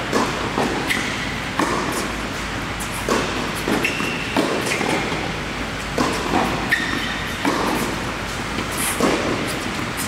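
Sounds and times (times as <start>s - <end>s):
tennis ball struck by racket: 0.1s - 2.2s, 2.9s - 5.3s, 5.9s - 10.0s.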